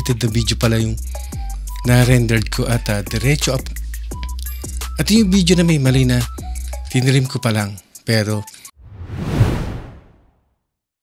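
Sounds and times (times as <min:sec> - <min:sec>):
whoosh transition effect: 0:08.8 - 0:10.4.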